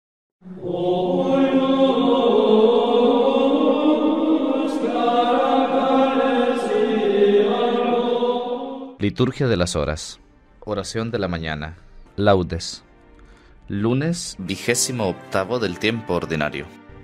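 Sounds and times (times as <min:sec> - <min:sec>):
voices chanting long notes: 0:00.4 - 0:09.0.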